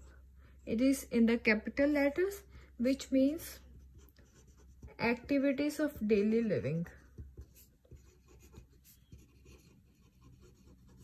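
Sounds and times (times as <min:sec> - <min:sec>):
pen scratching on paper: 0:03.8 - 0:11.0.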